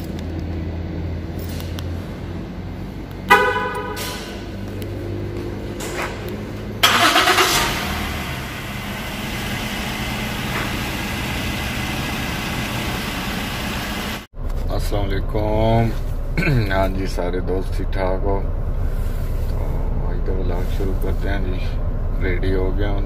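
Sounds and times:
car engine starting and idling: 0:00.0 - 0:23.0
car horn: 0:03.3 - 0:04.4.

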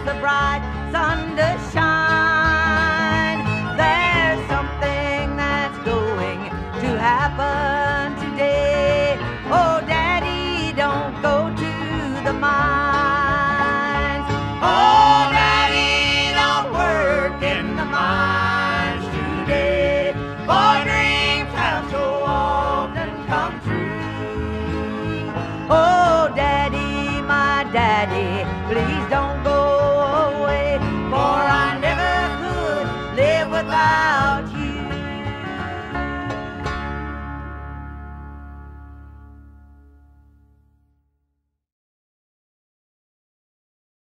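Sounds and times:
banjo: 0:00.0 - 0:39.8
acoustic guitar: 0:00.0 - 0:41.0.

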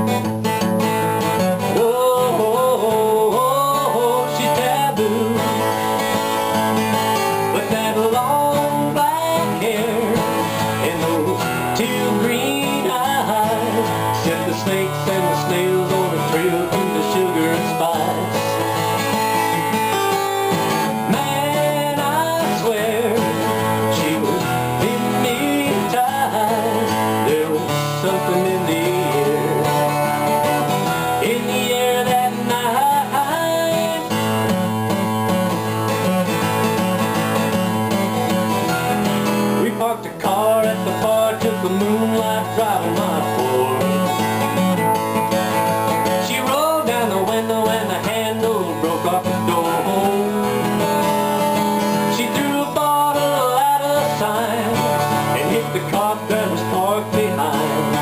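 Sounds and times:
acoustic guitar country playing: 0:00.0 - 0:58.0.

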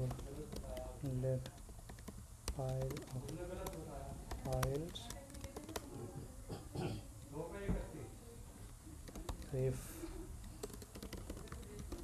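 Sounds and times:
computer keyboard typing: 0:00.0 - 0:06.2, 0:09.0 - 0:12.0.

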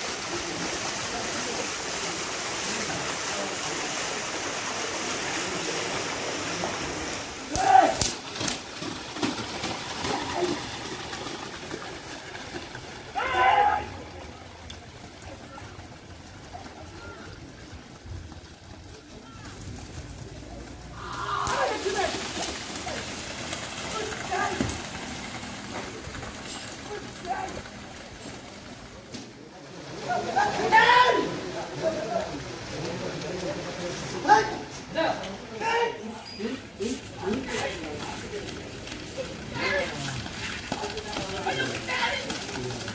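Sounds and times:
water splashing and churning: 0:00.0 - 0:35.8
outdoor noise haze: 0:00.0 - 0:42.9.

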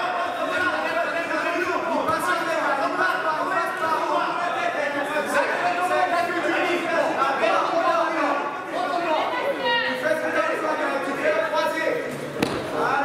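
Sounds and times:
chatter of many voices: 0:00.0 - 0:13.0.

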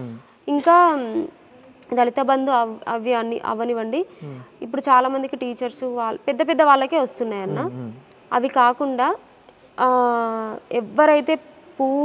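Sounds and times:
crickets trilling: 0:00.0 - 0:12.0
woman speaking: 0:00.5 - 0:01.3, 0:01.9 - 0:07.7, 0:08.3 - 0:09.2, 0:09.8 - 0:12.0.

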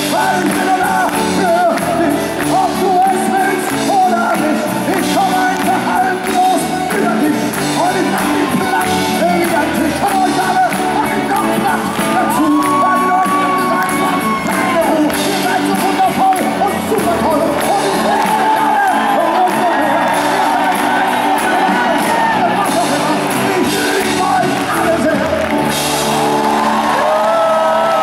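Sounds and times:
man singing: 0:00.0 - 0:25.8
crowd shouting and whooping: 0:00.0 - 0:28.0
electric guitar: 0:00.0 - 0:28.0
live rock band playing: 0:00.0 - 0:28.0
piano: 0:00.0 - 0:28.0.

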